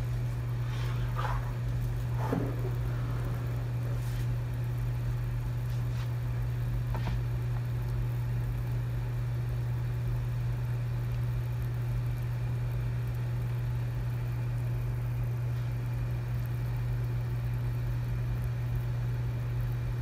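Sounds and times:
steady low hum: 0.0s - 20.0s
water boiling in a pan: 0.0s - 20.0s.

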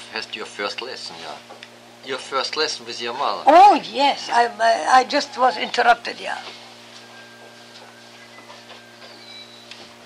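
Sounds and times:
tape hum and hiss: 0.0s - 10.0s.

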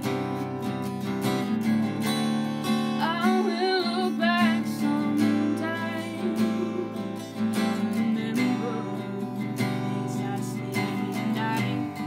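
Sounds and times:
acoustic guitar strummed: 0.0s - 12.0s
person singing: 3.0s - 12.0s.

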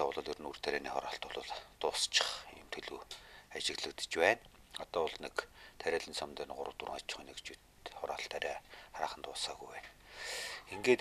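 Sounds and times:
man speaking: 0.0s - 9.9s, 10.6s - 11.0s.

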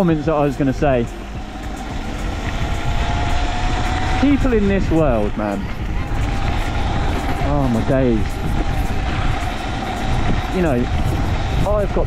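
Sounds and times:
electric motor whine: 0.0s - 12.0s
wind rush on microphone: 0.0s - 12.0s.

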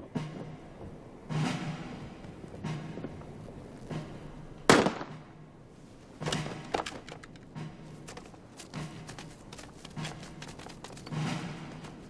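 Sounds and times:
rifle shot: 4.7s - 5.2s.

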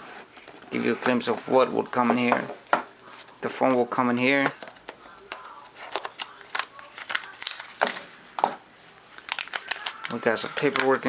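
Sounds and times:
packaging clicks and scrapes: 9.2s - 11.0s.

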